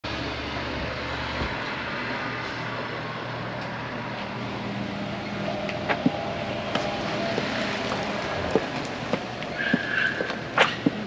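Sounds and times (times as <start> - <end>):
street traffic noise: 0.0 - 11.0
low vehicle rumble: 0.1 - 11.0.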